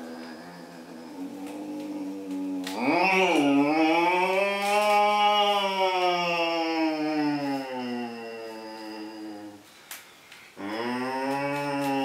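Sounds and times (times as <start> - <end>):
man humming like a motorbike: 0.0 - 4.9.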